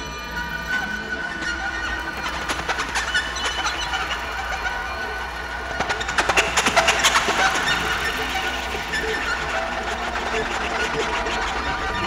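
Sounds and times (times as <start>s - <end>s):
low electronic drone: 0.0s - 12.0s.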